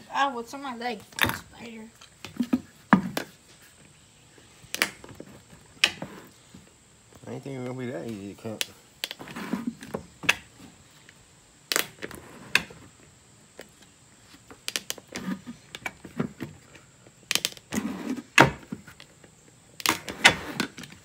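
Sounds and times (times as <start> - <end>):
hot knife cracking plastic: 4.7 - 5.1, 11.7 - 12.0, 17.3 - 17.7, 19.8 - 21.0.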